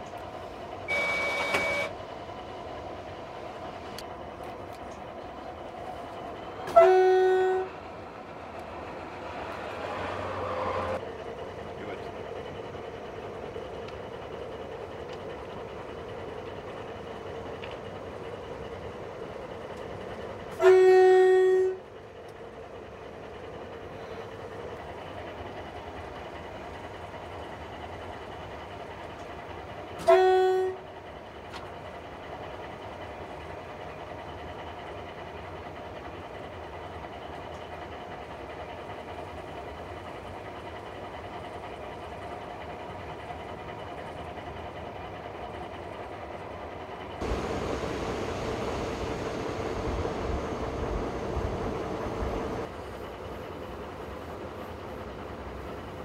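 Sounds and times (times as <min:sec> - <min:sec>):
locomotive running on track: 0:00.0 - 0:56.0
locomotive horn blasts: 0:00.9 - 0:01.9, 0:06.7 - 0:07.7, 0:20.6 - 0:21.8, 0:30.0 - 0:30.8.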